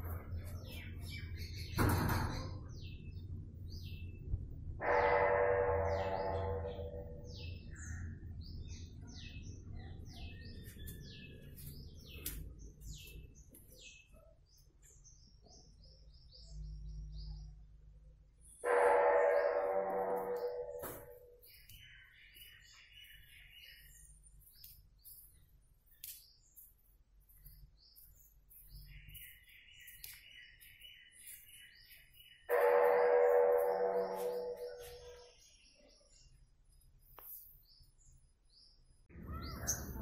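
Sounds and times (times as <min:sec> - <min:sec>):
small birds chirping: 0:00.0 - 0:04.4, 0:05.9 - 0:40.0.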